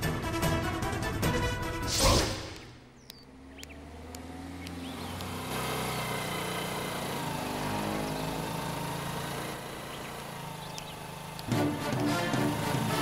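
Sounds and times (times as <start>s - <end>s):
vehicle engine passing: 1.8s - 13.0s.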